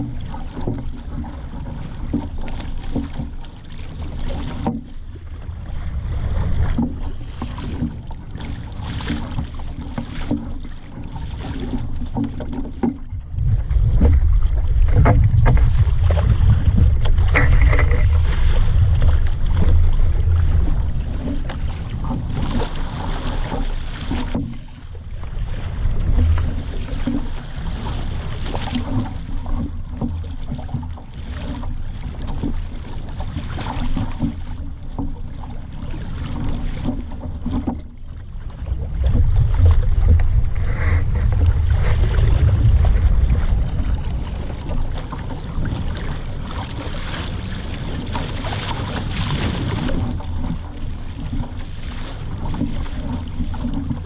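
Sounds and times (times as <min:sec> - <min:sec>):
water washing along hull: 0:00.0 - 0:54.0
wind rumbling on microphone: 0:00.0 - 0:54.0.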